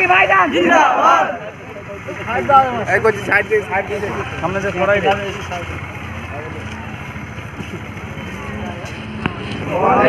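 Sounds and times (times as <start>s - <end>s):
crowd voices: 0.0s - 10.0s
vehicle engine hum: 0.0s - 10.0s.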